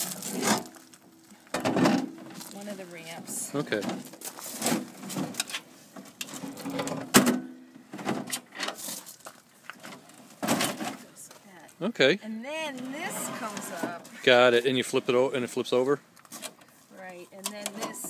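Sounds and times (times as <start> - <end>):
metal ramp clanking and rattling: 1.5 - 2.4, 6.2 - 8.8.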